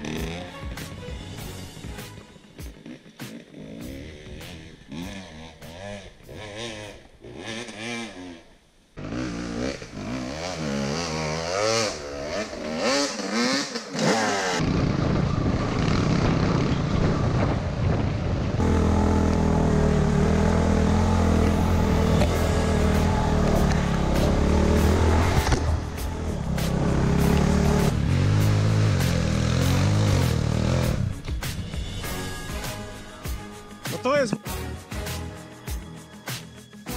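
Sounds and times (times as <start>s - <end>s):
motorcycle running steadily: 0.0s - 8.4s, 9.0s - 33.6s
dirt bike engine revving: 0.0s - 17.9s, 18.6s - 33.6s
wind noise: 14.6s - 18.7s.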